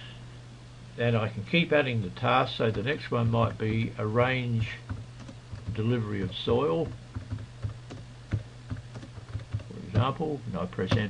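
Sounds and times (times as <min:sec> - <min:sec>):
low steady hum: 0:00.0 - 0:11.0
keyboard key clicks: 0:06.8 - 0:10.1.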